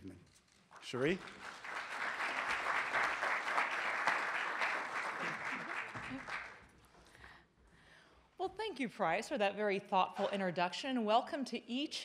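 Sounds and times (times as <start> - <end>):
audience applauding: 0.9 - 6.7.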